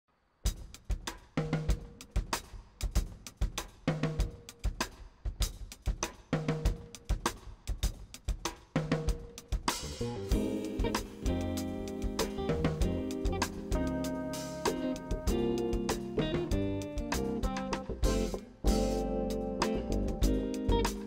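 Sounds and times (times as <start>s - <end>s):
jazz drum kit groove: 0.5s - 21.0s.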